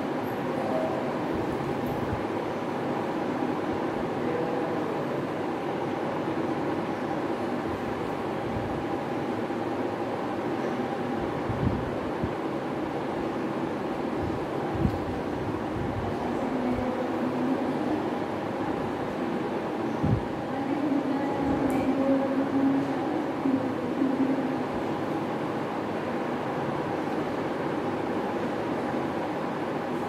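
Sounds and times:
classroom background rumble: 0:00.0 - 0:30.0.

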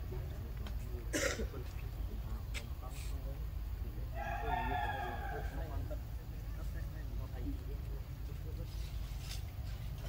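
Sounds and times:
faint background voices: 0:00.0 - 0:10.0
long steady animal call: 0:04.1 - 0:05.9.

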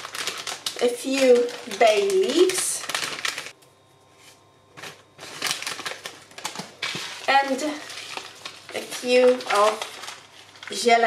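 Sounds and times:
plastic packet rustling: 0:00.0 - 0:03.6, 0:04.8 - 0:11.0.

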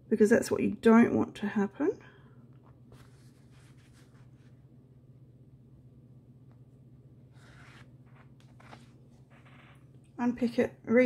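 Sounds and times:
steady low hum: 0:00.0 - 0:11.0
fabric rustling: 0:02.8 - 0:04.6.

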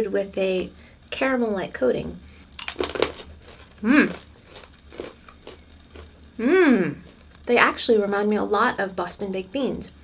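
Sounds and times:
chewing crunchy candy: 0:02.6 - 0:06.2, 0:07.0 - 0:07.5.

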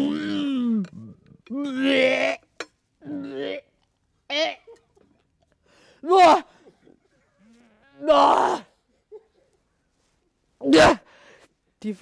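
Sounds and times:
woman gagging and retching: 0:00.0 - 0:05.2.

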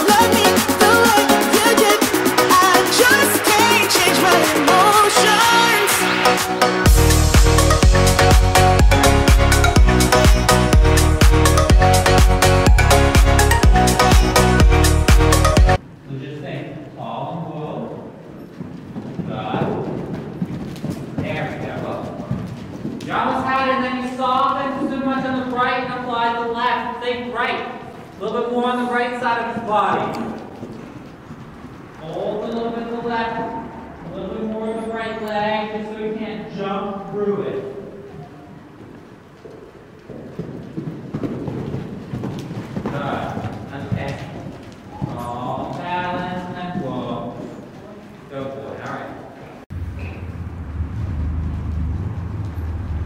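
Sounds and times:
horse hoofbeats on soft footing: 0:18.4 - 0:25.7, 0:29.4 - 0:32.8, 0:38.8 - 0:48.1.

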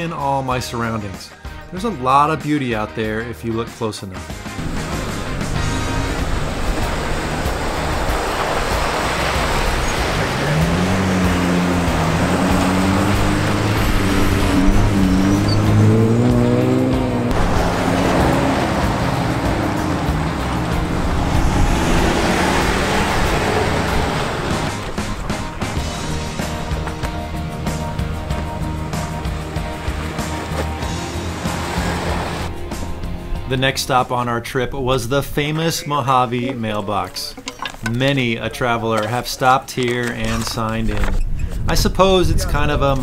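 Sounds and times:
background music: 0:00.0 - 0:40.6
engines driving past: 0:04.6 - 0:32.6.

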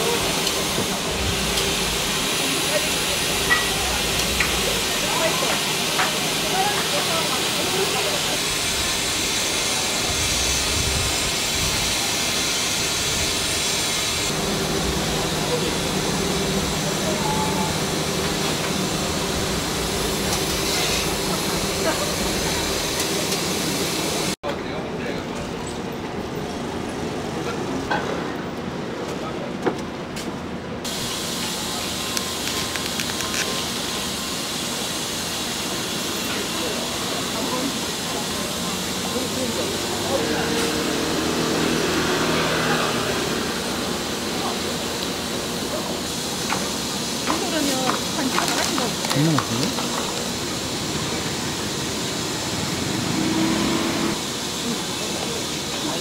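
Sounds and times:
steamer hissing: 0:00.0 - 0:24.4, 0:30.9 - 0:56.0
street noise: 0:00.0 - 0:56.0
background voices: 0:47.5 - 0:50.3.

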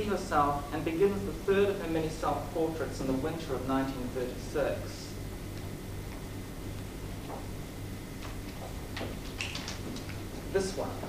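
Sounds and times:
steady low hum: 0:00.0 - 0:11.0
book pages flicking: 0:08.2 - 0:10.2.

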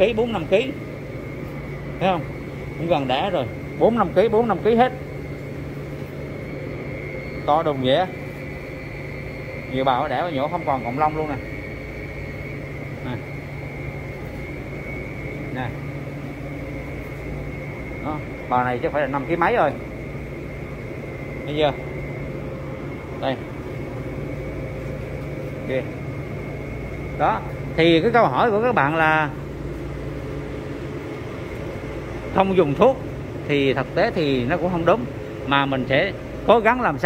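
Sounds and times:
high-pitched whine: 0:00.0 - 0:37.0
low mechanical drone: 0:00.0 - 0:37.0
machine hum: 0:00.0 - 0:37.0.

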